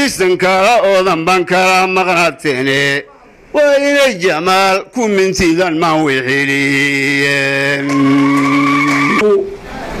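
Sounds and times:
noise: 0.0s - 10.0s
man singing a held note: 5.6s - 9.6s.

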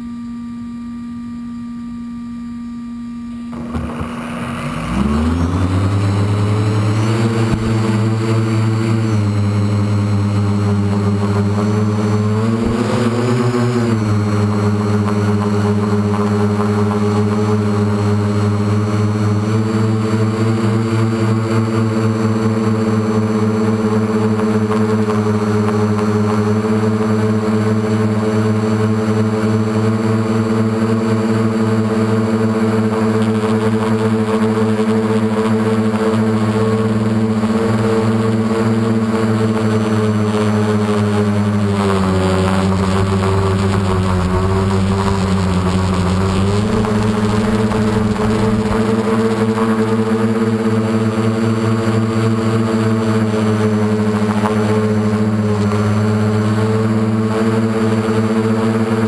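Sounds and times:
model aircraft motor and propeller: 3.5s - 59.0s.

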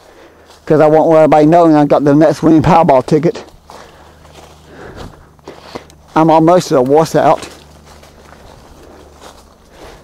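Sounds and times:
footsteps through dry leaves: 0.0s - 10.0s.

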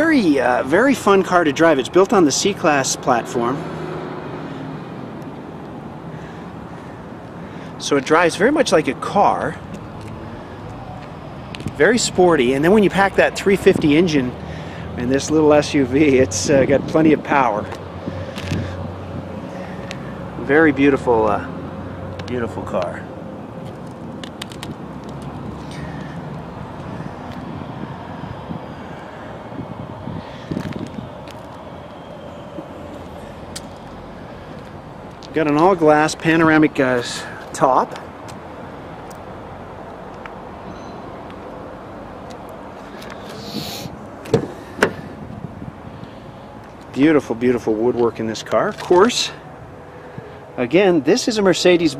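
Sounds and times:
distant road traffic: 0.0s - 51.9s.

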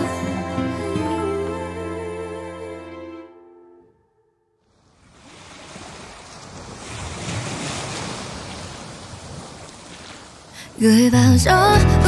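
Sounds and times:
ocean waves washing in: 4.6s - 12.0s.

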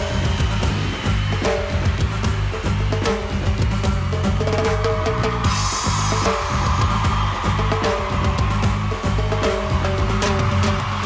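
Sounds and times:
drum-kit beat: 0.0s - 11.0s
heavy bass: 0.0s - 11.0s
cymbal-like hiss: 5.4s - 8.2s.

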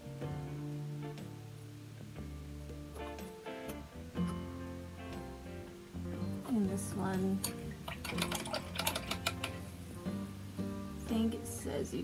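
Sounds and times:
small objects clicking on tabletop: 7.4s - 9.6s.

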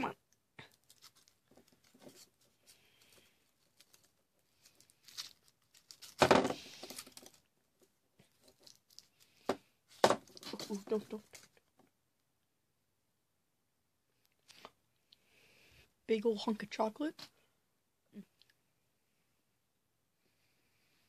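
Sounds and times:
foil wrapper crinkling: 0.6s - 7.5s, 8.3s - 9.4s
foil wrapper tearing: 0.7s - 2.4s, 3.0s - 7.4s.

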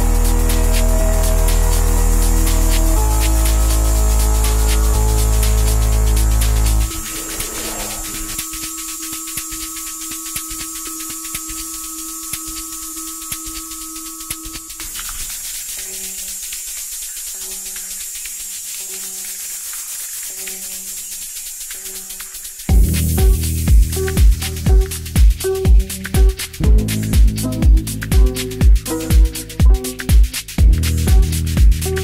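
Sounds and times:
kick drum and bass: 0.0s - 15.0s, 22.7s - 32.0s
hissing hi-hats: 0.0s - 32.0s
held synth tone: 6.0s - 9.2s.

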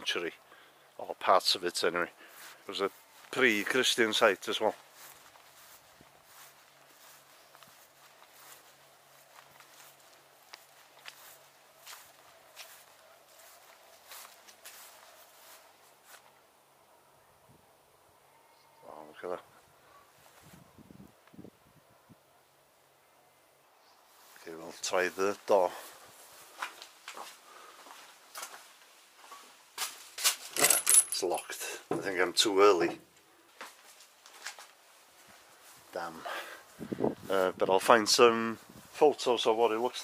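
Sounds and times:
footsteps on grass: 2.2s - 16.4s, 20.2s - 20.8s, 24.0s - 30.4s, 33.5s - 40.0s.

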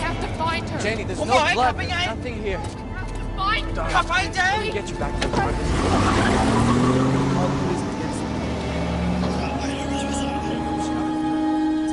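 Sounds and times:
car engine driving off: 4.8s - 11.9s.

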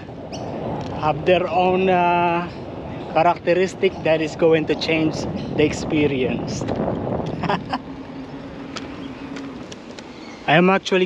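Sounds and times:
bicycle rolling: 1.6s - 11.0s.

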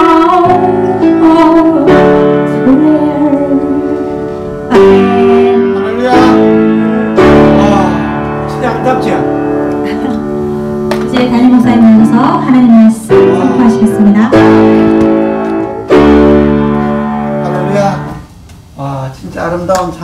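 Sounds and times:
woman singing a hymn: 0.0s - 5.9s, 11.0s - 14.7s
piano chords: 0.0s - 18.9s.

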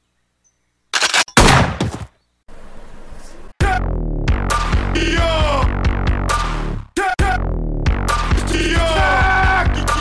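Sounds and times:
shotgun blasts: 1.0s - 2.1s.

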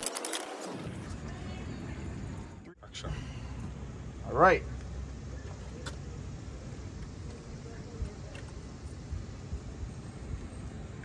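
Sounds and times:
low outdoor rumble: 0.7s - 11.0s.

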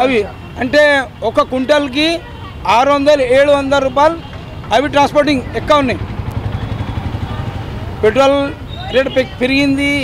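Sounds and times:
vehicle engine rumbling: 2.8s - 10.0s
man speaking: 8.0s - 10.0s.

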